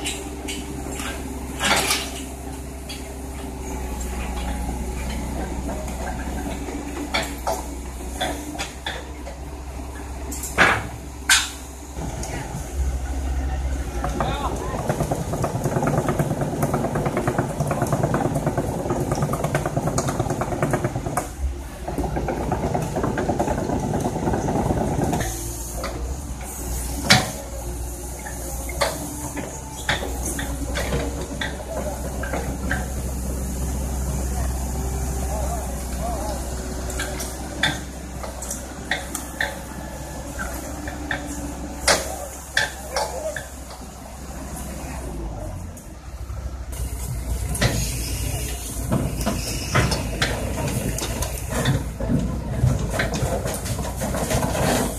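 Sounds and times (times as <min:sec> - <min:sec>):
heavy machine engine running: 0:00.0 - 0:54.9
people talking: 0:12.0 - 0:15.4, 0:28.8 - 0:46.1, 0:46.8 - 0:54.9
metal ramps clanking: 0:46.8 - 0:54.9.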